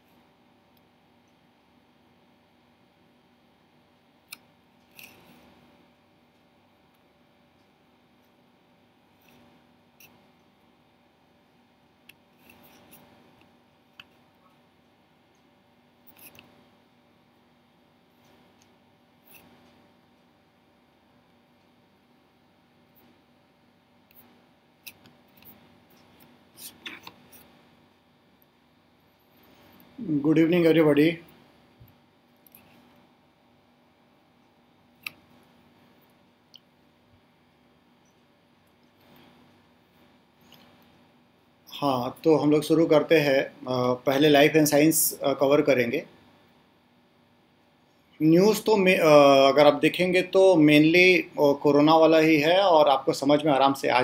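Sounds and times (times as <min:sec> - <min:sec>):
steady low hum: 0:00.0 - 0:54.0
man speaking: 0:30.0 - 0:31.3, 0:41.7 - 0:46.1, 0:48.2 - 0:54.0.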